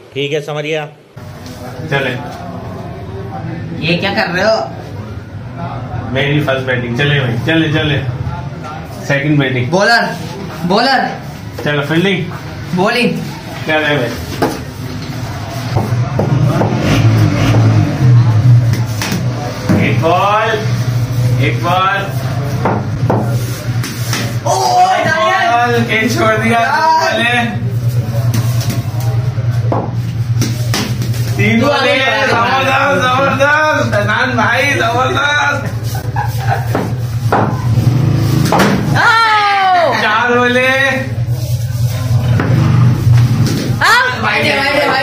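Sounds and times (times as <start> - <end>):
sharp knocks: 15.7 - 16.9, 22.6 - 24.4, 38.4 - 39.0.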